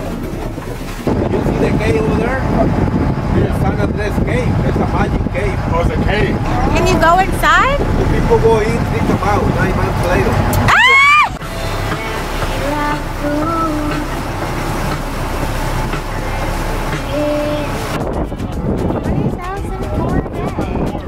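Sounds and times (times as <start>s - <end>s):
boat engine: 0.0s - 21.0s
rushing water: 0.0s - 21.0s
voices: 0.0s - 21.0s
wind on microphone: 0.0s - 21.0s.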